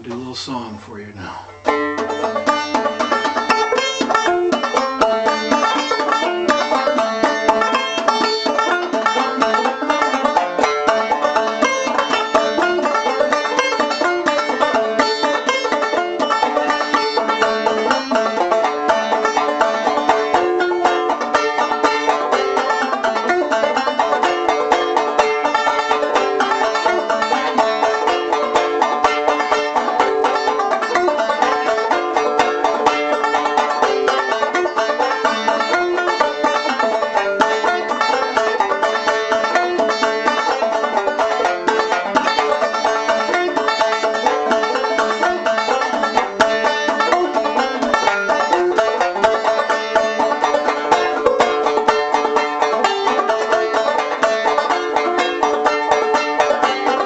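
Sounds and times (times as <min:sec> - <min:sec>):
banjo picked solo: 0:00.0 - 0:57.0.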